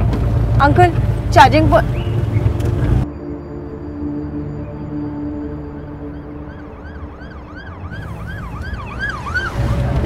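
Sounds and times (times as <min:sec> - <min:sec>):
low traffic rumble: 0:00.0 - 0:10.0
emergency vehicle siren yelping: 0:02.6 - 0:10.0.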